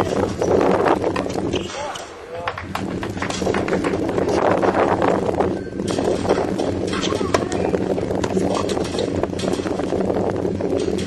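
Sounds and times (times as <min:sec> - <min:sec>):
steady low hum: 0:00.0 - 0:11.0
people talking: 0:01.5 - 0:02.7, 0:06.9 - 0:08.8.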